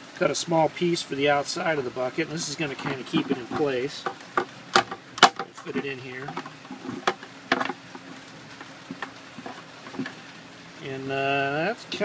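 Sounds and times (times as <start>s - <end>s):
hard plastic clicking and knocking: 3.2s - 8.1s.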